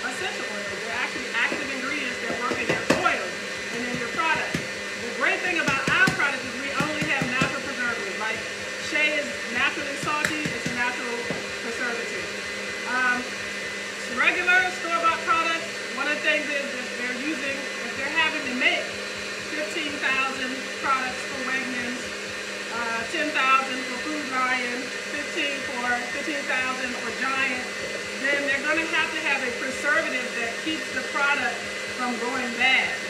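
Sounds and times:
stand mixer motor hum: 0.0s - 33.0s
woman talking: 0.0s - 33.0s.

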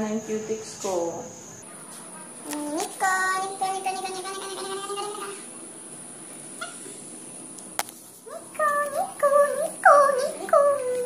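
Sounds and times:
high voice singing: 2.4s - 5.5s, 8.3s - 11.0s.

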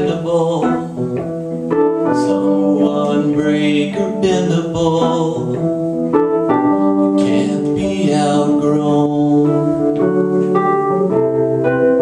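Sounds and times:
electric piano chords: 0.0s - 12.0s.

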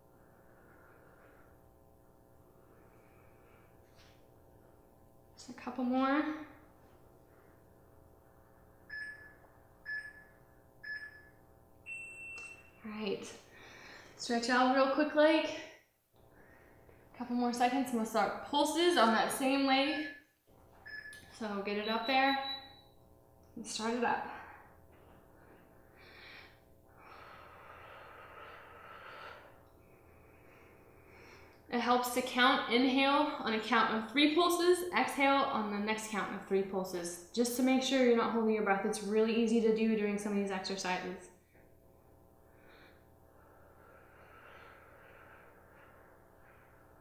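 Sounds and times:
woman breathing with effort: 0.0s - 4.5s, 13.4s - 14.2s, 15.5s - 17.1s, 24.2s - 31.7s, 41.8s - 47.0s
short timer beeps: 21.8s - 22.9s.

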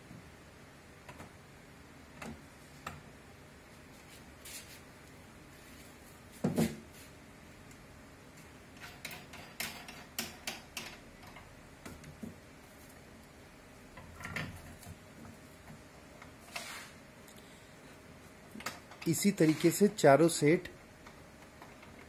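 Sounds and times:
lamp parts knocking and clicking: 8.8s - 12.4s.

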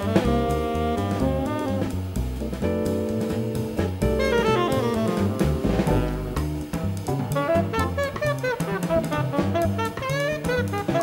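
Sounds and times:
drum kit: 0.0s - 11.0s
upright bass plucked: 0.0s - 11.0s
saxophone sustained notes: 4.2s - 6.4s.

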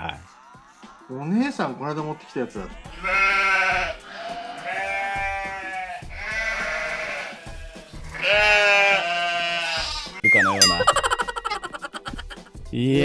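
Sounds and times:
sheep bleating: 2.7s - 10.2s.

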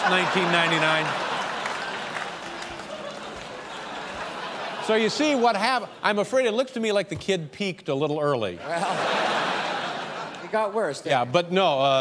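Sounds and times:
audience applause: 0.0s - 5.4s.

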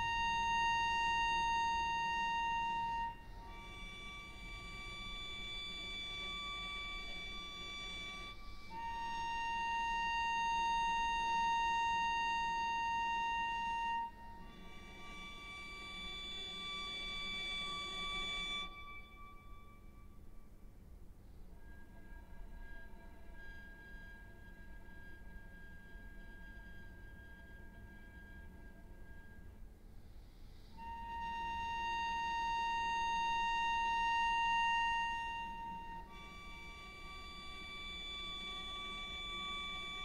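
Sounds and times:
cello long bowed note: 0.0s - 20.4s, 30.7s - 40.0s.

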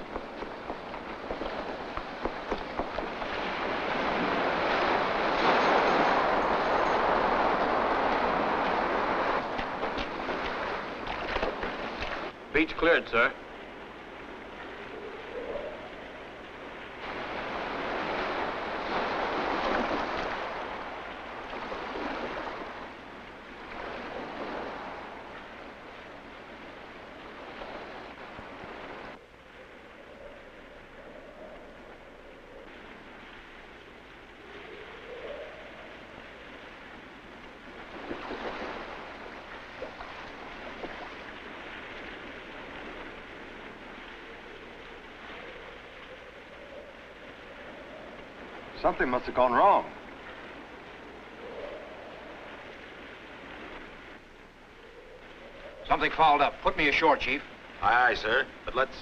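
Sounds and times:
surf washing ashore: 0.0s - 59.0s.

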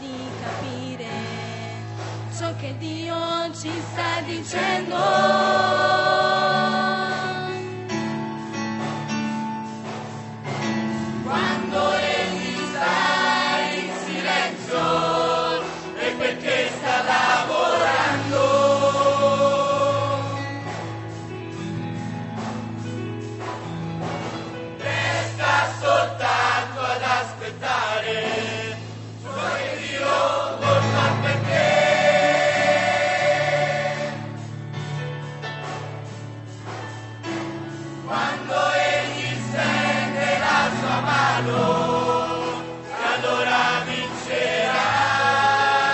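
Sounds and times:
choir singing gospel song: 0.0s - 35.0s, 36.4s - 45.9s
musical accompaniment: 0.0s - 45.9s.

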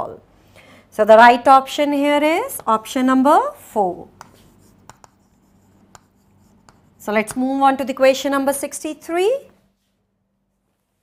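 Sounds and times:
chalk writing on blackboard: 4.2s - 7.4s.

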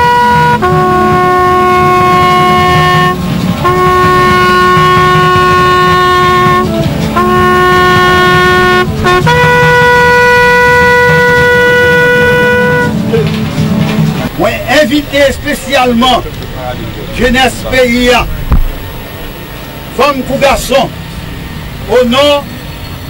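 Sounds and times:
solo brass horn call: 0.0s - 13.9s.

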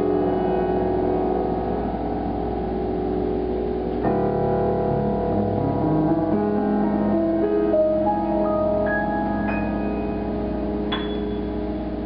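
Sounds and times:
piano blues chord ringing: 0.0s - 12.0s.

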